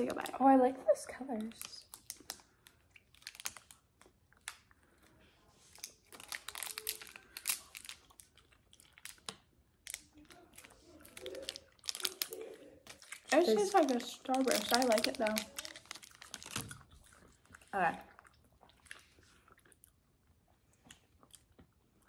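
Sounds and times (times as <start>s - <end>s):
plastic candy wrappers crinkling: 0.0s - 19.4s.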